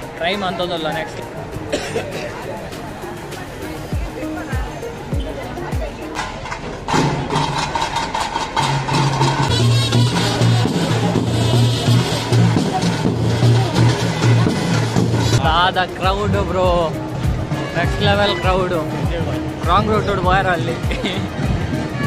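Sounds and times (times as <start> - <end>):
crowd voices: 0.0 - 22.0
procession music with rapid drumming: 0.0 - 22.0.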